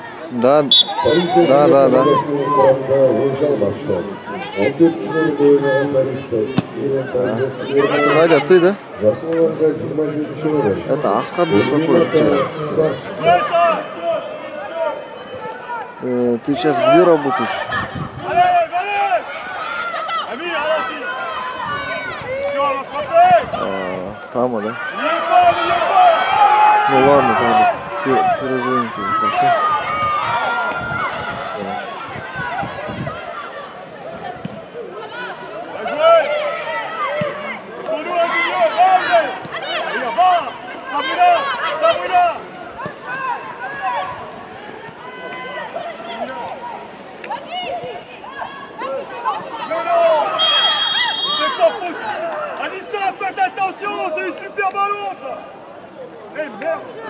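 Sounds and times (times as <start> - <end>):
voices talking and calling out: 0.0 - 57.0.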